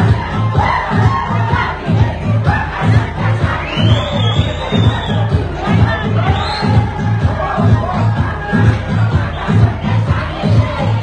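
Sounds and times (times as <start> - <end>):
crowd of women's voices: 0.0 - 11.0
loud dance music: 0.0 - 11.0.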